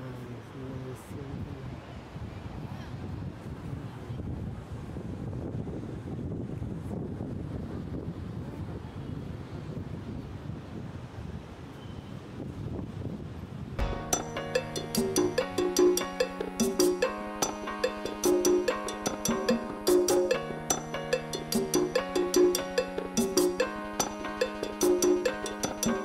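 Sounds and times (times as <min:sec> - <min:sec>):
wind on microphone: 0:01.1 - 0:13.8
music with percussive beat: 0:13.8 - 0:26.0.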